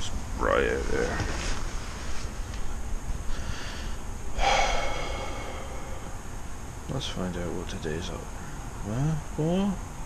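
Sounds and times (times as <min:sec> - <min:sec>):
man sighing: 0:04.4 - 0:06.4.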